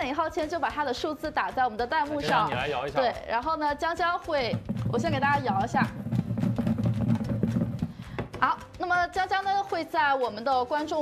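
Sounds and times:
balls knocking in shaken box: 2.2s - 8.9s.

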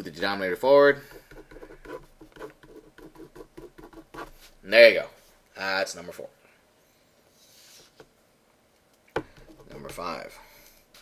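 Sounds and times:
pen scratching on paper: 1.0s - 4.6s.

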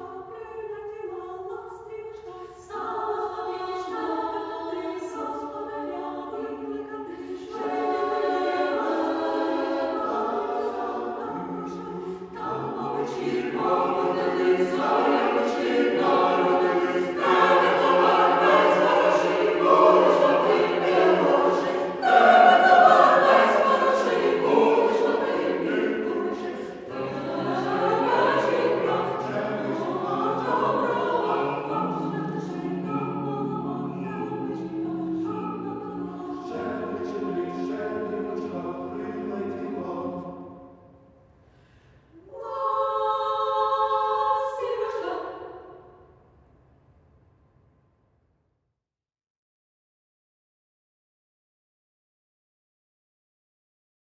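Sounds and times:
choir singing a carol: 0.0s - 41.0s, 42.1s - 46.1s.

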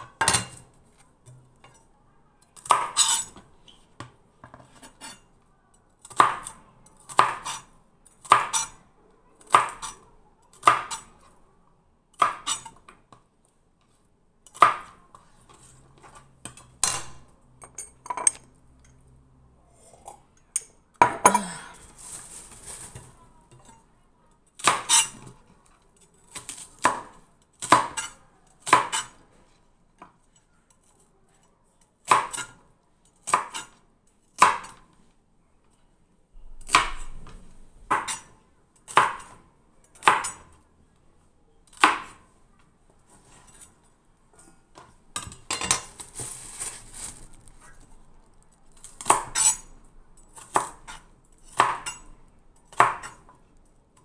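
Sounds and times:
knife chopping celery on board: 6.0s - 7.6s, 8.2s - 8.8s, 50.4s - 52.0s, 52.7s - 53.2s
crunchy rustle: 21.8s - 23.2s, 45.8s - 48.8s.

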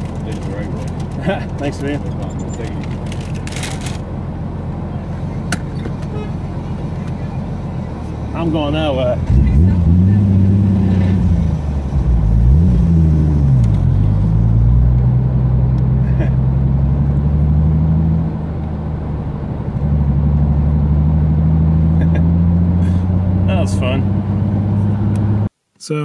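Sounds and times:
car engine revving: 0.0s - 25.5s.

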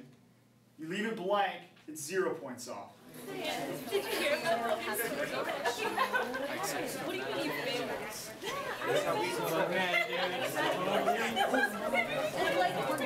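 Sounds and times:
students chattering: 3.0s - 13.0s.

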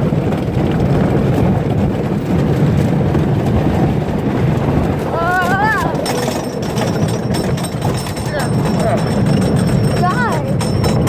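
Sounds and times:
roller coaster rattling on track: 0.0s - 11.0s.

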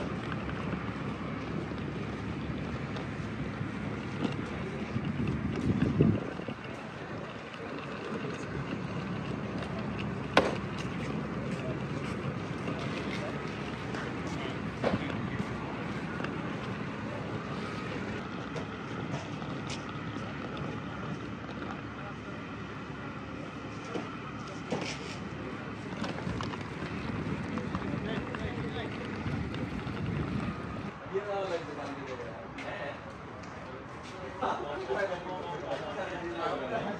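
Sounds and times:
wind on microphone: 4.0s - 7.3s, 26.1s - 31.0s.

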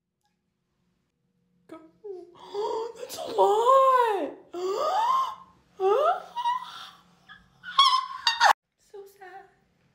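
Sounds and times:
woman whimpering and wailing: 2.0s - 7.0s.

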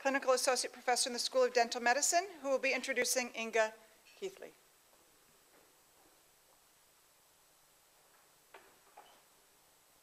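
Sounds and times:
footsteps: 4.9s - 6.7s.

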